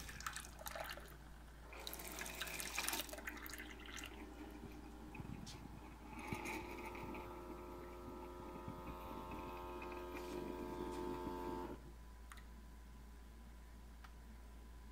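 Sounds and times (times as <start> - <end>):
brewer pump humming: 1.6 - 11.8.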